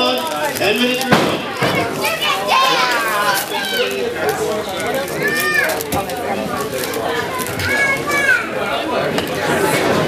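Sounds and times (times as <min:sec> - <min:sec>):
crowd voices: 0:00.0 - 0:10.0
children shouting: 0:01.6 - 0:04.2, 0:05.1 - 0:05.9, 0:07.2 - 0:08.8.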